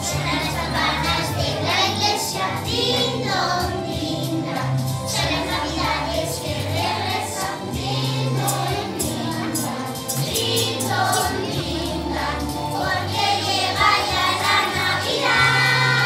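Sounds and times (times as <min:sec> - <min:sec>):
backing music with bass line: 0:00.0 - 0:16.0
children singing together: 0:00.0 - 0:16.0.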